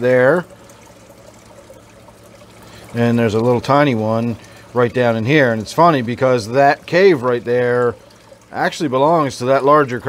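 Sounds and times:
aquarium water trickling: 0.0s - 10.0s.

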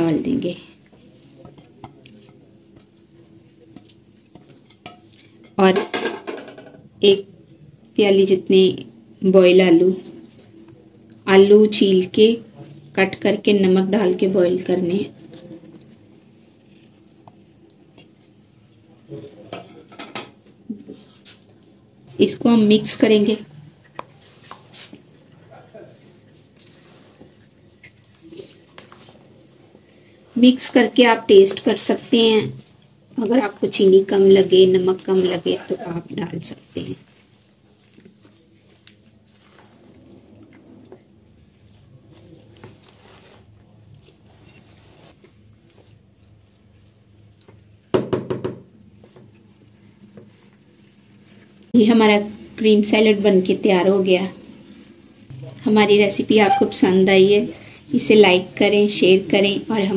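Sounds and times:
woman speaking: 0.0s - 0.8s, 5.6s - 5.9s, 7.0s - 7.3s, 8.0s - 10.1s, 11.2s - 15.4s, 22.1s - 23.6s, 30.4s - 32.6s, 33.2s - 37.1s, 51.7s - 54.4s, 55.3s - 59.9s
spoon stirring salad in bowl: 1.4s - 5.6s
dish scraping against bowl: 56.3s - 57.0s.

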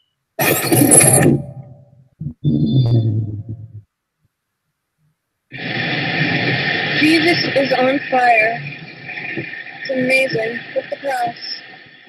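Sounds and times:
steady rushing noise: 5.5s - 12.0s.

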